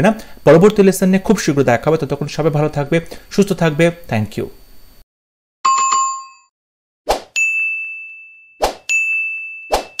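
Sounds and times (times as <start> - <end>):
notification bell dings: 5.7 - 6.5, 7.4 - 10.0
low chime: 7.4 - 10.0.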